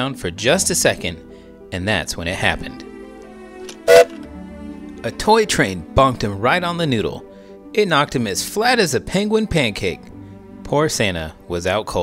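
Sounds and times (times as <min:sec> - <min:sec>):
soft background music: 0:00.0 - 0:12.0
cartoon bonk sound effect: 0:03.9 - 0:04.1.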